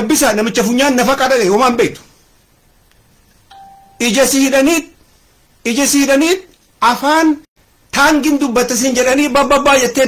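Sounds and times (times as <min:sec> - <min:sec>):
faint background noise: 0:00.0 - 0:10.0
short electronic beep: 0:03.5 - 0:04.2.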